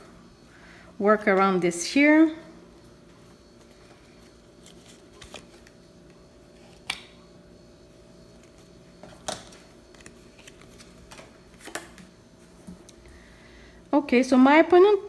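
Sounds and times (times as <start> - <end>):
faint room hum: 0.0 - 15.0.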